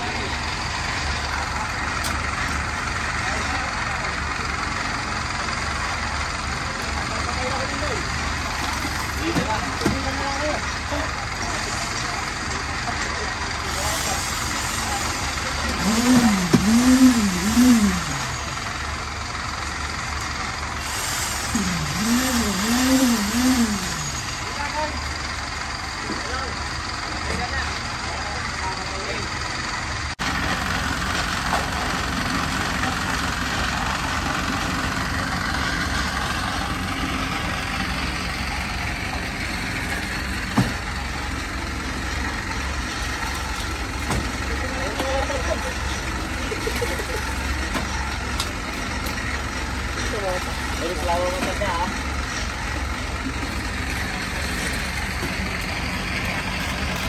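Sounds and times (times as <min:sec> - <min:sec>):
concrete mixer engine droning: 0:00.0 - 0:57.0.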